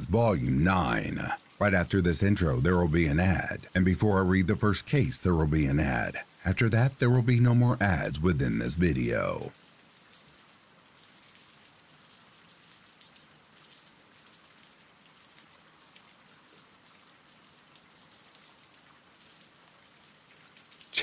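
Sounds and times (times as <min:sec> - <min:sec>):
drops ticking: 0:00.0 - 0:09.5
faint steady rain: 0:00.0 - 0:21.0.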